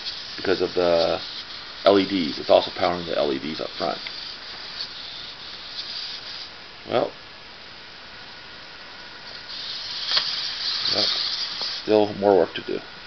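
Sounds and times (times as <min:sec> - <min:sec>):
background hiss: 0:00.0 - 0:13.0
servos whirring: 0:09.3 - 0:12.0.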